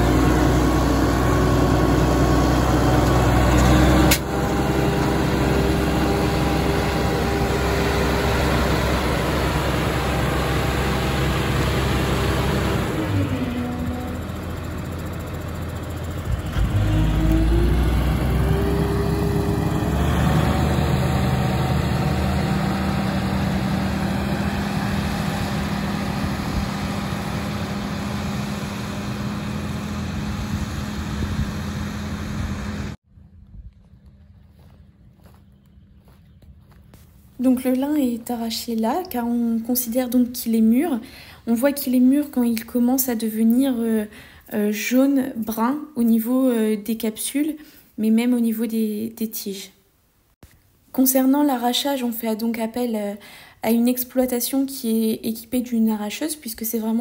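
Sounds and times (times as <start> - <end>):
machine engine running: 0.0 - 33.0.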